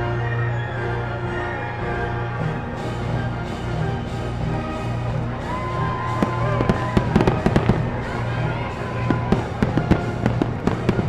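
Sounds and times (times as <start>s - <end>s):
music playing: 0.0s - 11.0s
fireworks bangs and crackles: 5.6s - 11.0s.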